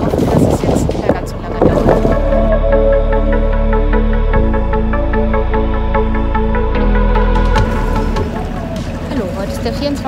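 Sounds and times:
woman's voice: 0.0 - 2.2, 9.1 - 10.0
wind buffeting microphone: 0.0 - 2.7.

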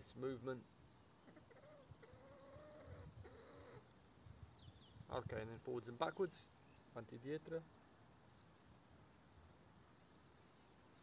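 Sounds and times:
drawn-out animal call: 1.3 - 3.9.

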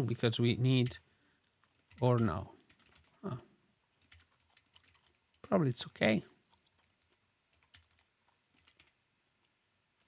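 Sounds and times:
faint keyboard keystrokes: 0.8 - 3.2, 4.0 - 5.6, 6.5 - 10.0.

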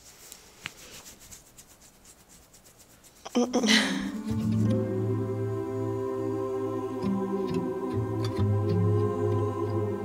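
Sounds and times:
hand rubbing dog fur: 0.0 - 3.4.

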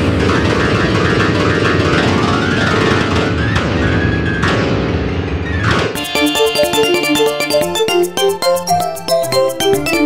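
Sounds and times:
dense synthesized piano cluster: 0.0 - 10.0.

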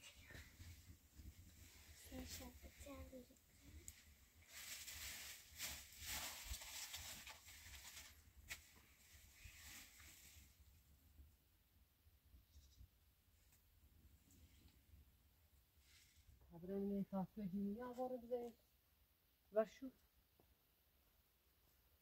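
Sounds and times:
rustling hiss: 1.5 - 10.7.

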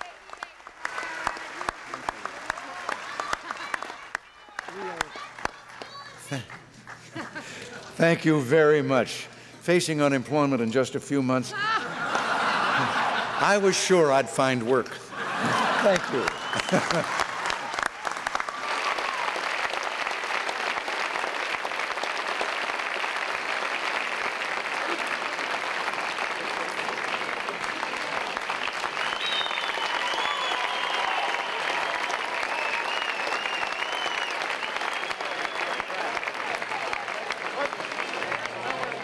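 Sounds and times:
audience applauding: 0.0 - 7.9, 15.2 - 39.0.

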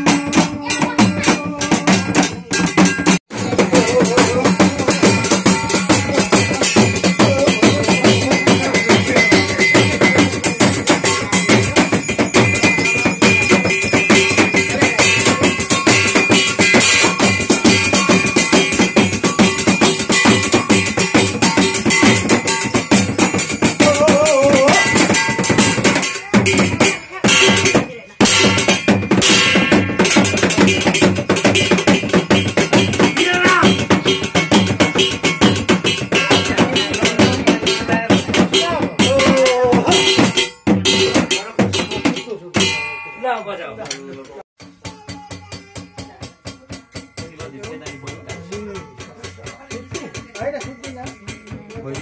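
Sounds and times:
frame drum beating: 0.0 - 52.0
metallic jingle: 0.0 - 52.0.

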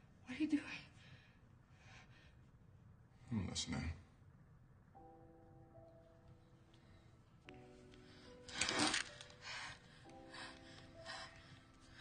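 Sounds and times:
soft sustained film score: 0.0 - 12.0.

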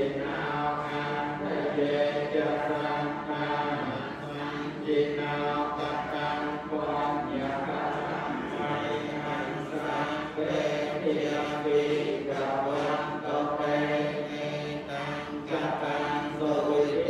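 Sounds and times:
monks chanting: 0.0 - 17.0.

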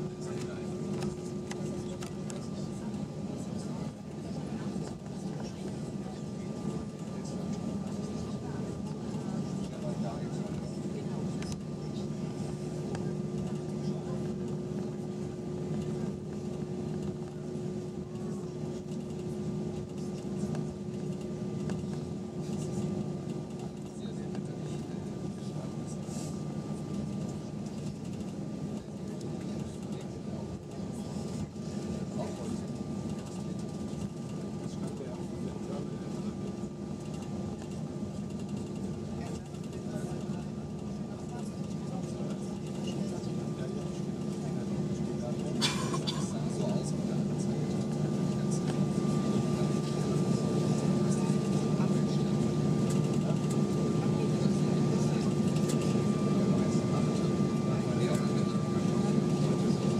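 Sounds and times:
jet engine hum and whine: 0.0 - 59.9.

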